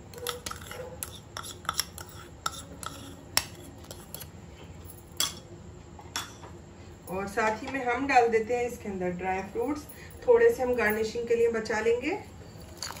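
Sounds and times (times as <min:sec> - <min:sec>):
utensils clinking against a pan: 0:12.6 - 0:13.0.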